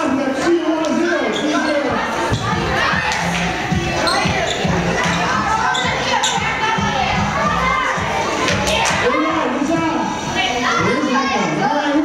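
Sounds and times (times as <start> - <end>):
children shouting and cheering: 0.4 - 12.0.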